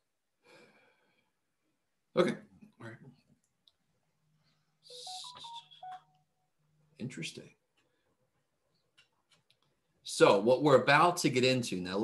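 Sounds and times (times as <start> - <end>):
electronic jingle of quick beeps: 4.9 - 6.1.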